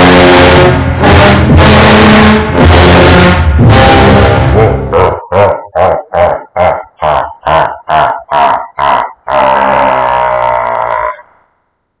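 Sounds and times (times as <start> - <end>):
deep grunting voice-like sound: 3.7 - 11.4.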